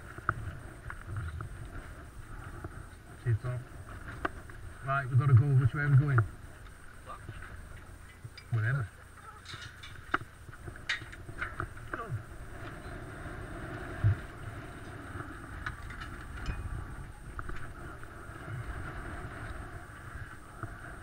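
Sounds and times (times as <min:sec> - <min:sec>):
bike frames clicking and rattling: 0:07.5 - 0:12.1, 0:14.8 - 0:17.8.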